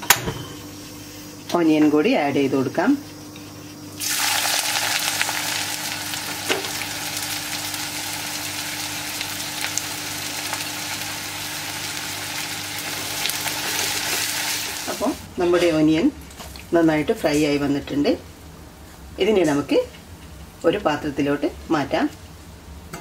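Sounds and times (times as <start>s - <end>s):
onions sizzling in hot oil: 4.0s - 16.0s.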